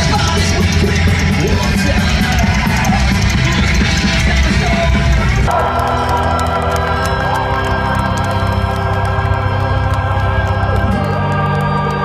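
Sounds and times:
sustained organ chords: 0:00.0 - 0:12.0.

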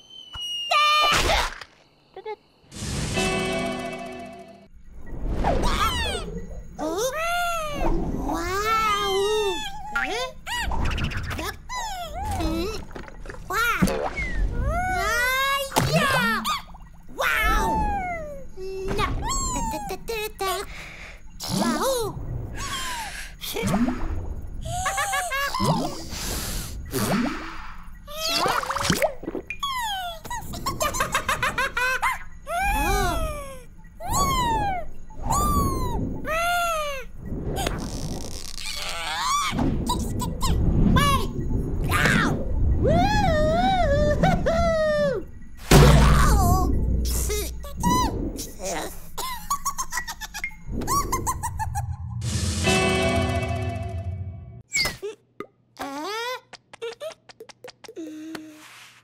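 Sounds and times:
squeaky cartoon character chirps: 0:32.5 - 0:37.1.

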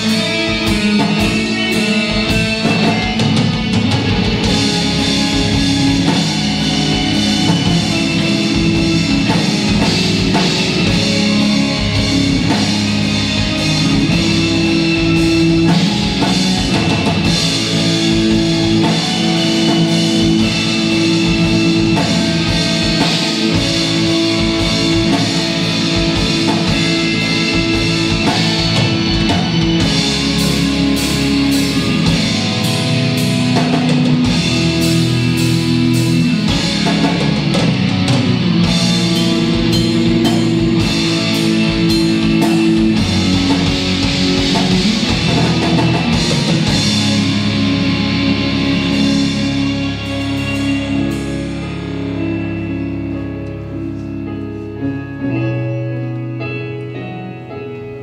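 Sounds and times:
drum kit: 0:00.0 - 0:54.8
rock band playing: 0:00.0 - 0:58.0.

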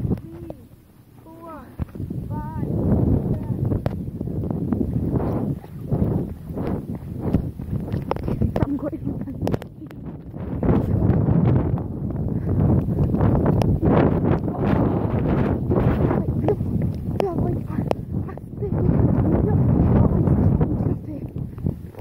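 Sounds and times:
wind on microphone: 0:00.0 - 0:22.0.

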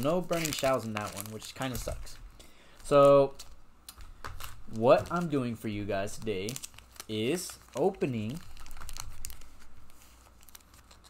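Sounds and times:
foil packs rustling and crinkling: 0:00.0 - 0:11.0.

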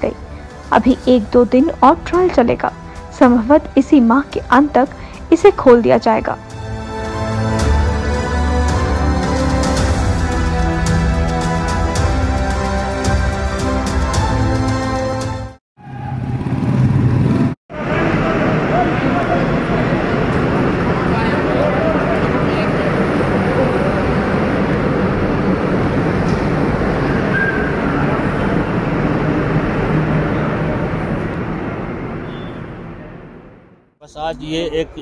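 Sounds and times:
vehicles driving through tunnel: 0:15.8 - 0:35.0
onlookers' voices: 0:17.8 - 0:24.8.

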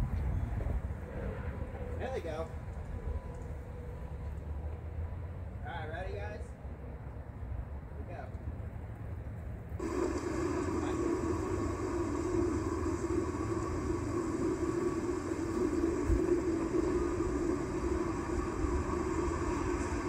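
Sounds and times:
loudspeaker hum with hiss: 0:09.8 - 0:20.0.

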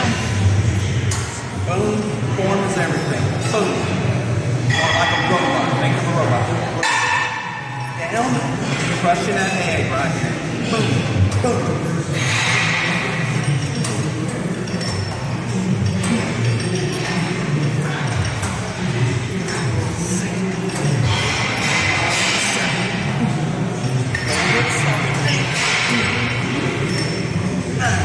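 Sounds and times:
metallic clinks of weights: 0:11.8 - 0:23.0.

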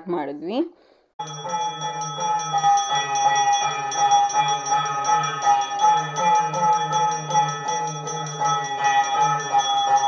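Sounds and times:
brass hand bell ringing: 0:01.2 - 0:10.0.

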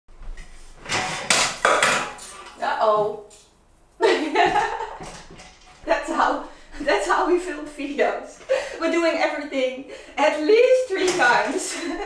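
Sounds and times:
metal ladder clattering: 0:00.8 - 0:03.5, 0:04.2 - 0:06.2.

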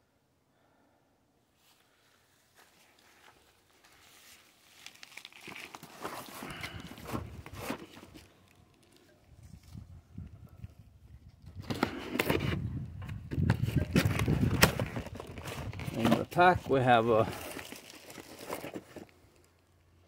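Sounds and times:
cardboard box rustling and scraping: 0:05.4 - 0:08.3, 0:11.6 - 0:19.1.

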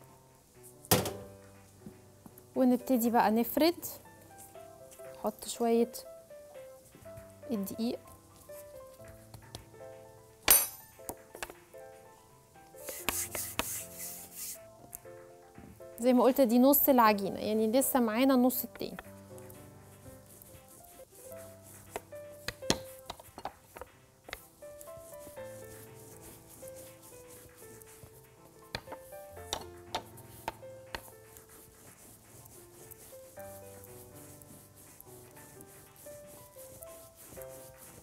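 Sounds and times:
quiet background music: 0:00.0 - 0:38.0
rolling pin rubbing on dough: 0:12.8 - 0:14.9, 0:16.2 - 0:38.0.

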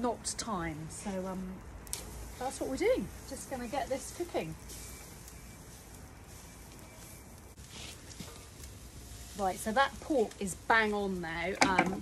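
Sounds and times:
low outdoor rumble: 0:00.0 - 0:12.0
meat sizzling on a grill: 0:00.0 - 0:12.0.

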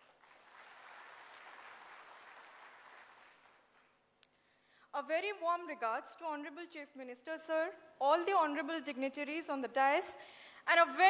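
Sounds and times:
faint audience applause: 0:00.0 - 0:04.0.

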